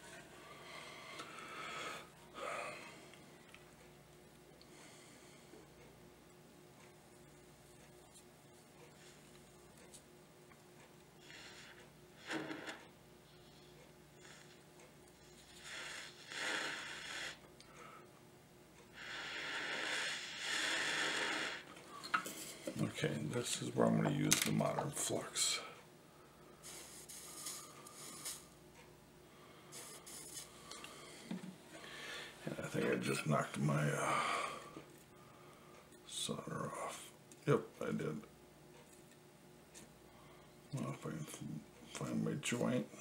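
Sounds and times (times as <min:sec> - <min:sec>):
breathy blowing hiss: 0:00.4 - 0:03.1, 0:11.2 - 0:14.6, 0:15.2 - 0:18.1, 0:18.9 - 0:22.8, 0:25.4 - 0:28.6, 0:29.3 - 0:33.2, 0:33.9 - 0:35.7.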